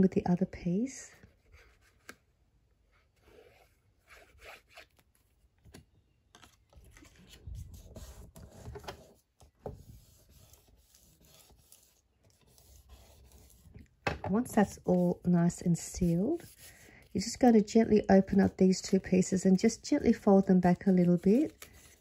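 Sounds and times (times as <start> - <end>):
paper rustling: 6.3 - 9.2, 15.8 - 22.0
paper rubbed on a table: 7.5 - 13.8, 14.5 - 22.0.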